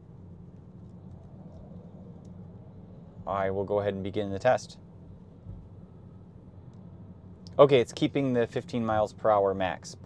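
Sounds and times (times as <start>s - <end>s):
road and tyre noise in car: 0.0s - 10.0s.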